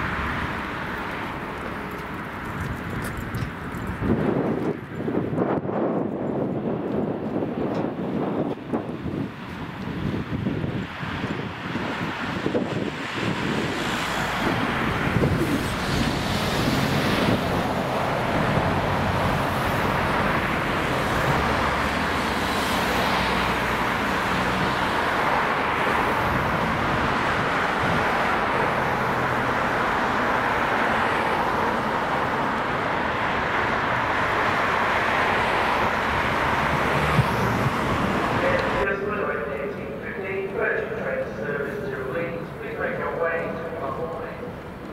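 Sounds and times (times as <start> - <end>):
diesel locomotive engine: 0.0 - 44.9
train wheel and rail noise: 0.0 - 44.9
wind on microphone: 2.4 - 31.6, 32.2 - 38.9.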